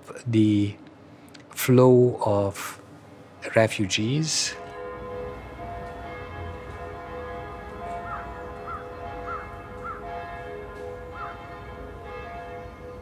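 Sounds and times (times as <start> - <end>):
bells ringing: 4.4 - 13.0
bird calling: 8.0 - 10.1.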